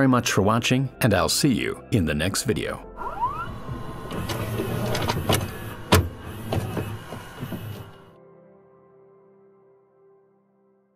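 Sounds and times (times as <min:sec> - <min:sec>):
rising glide: 0:03.0 - 0:08.1
steady low hum: 0:03.4 - 0:08.1.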